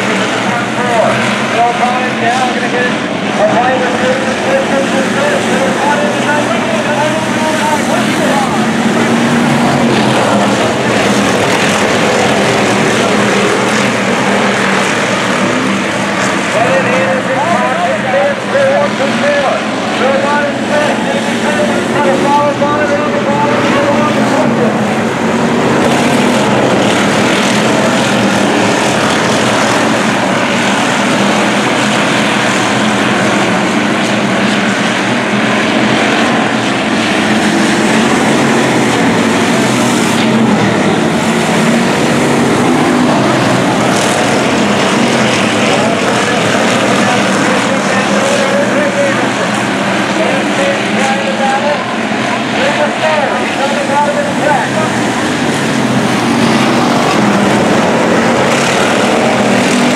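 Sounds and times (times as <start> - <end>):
race car engines passing: 0.0 - 59.9.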